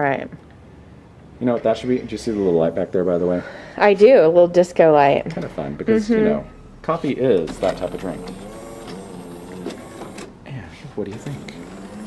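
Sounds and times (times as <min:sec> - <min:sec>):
espresso machine whirring: 0:07.3 - 0:10.4, 0:11.2 - 0:12.0.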